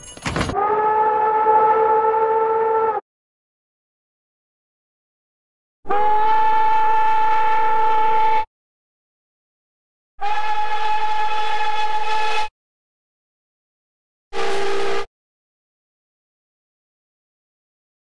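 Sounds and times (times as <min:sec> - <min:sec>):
steam whistle blowing a chord: 0:00.6 - 0:03.0, 0:05.9 - 0:08.5, 0:10.2 - 0:12.5, 0:14.4 - 0:15.1.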